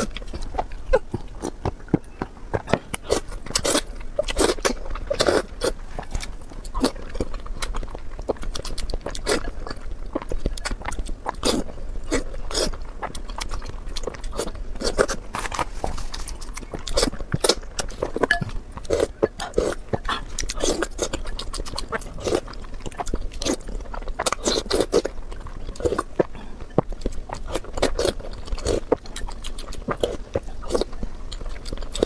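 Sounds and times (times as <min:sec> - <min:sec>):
chewing: 0:00.0 - 0:32.0.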